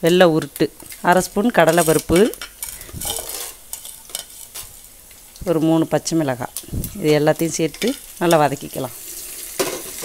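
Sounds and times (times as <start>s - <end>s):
sizzling in hot oil: 0.0s - 10.0s
oil crackles: 0.8s - 5.7s.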